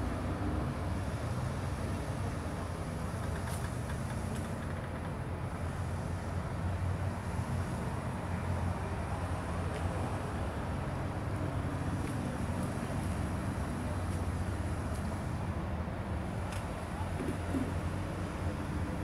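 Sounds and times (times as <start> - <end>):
engine low rumble: 0.0 - 19.0.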